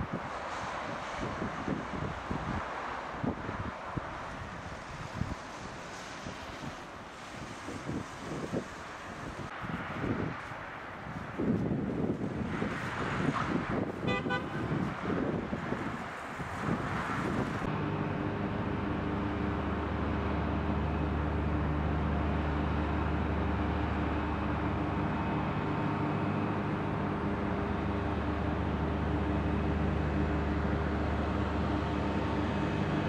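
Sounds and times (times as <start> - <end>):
low engine hum: 0.0 - 33.0
traffic noise: 0.0 - 33.0
wind: 0.0 - 33.0
short horn toot: 14.0 - 14.7.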